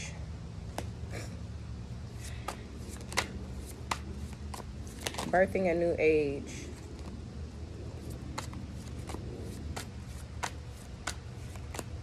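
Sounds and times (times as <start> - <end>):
low steady hum: 0.0 - 12.0
cards shuffled by hand: 2.2 - 5.4.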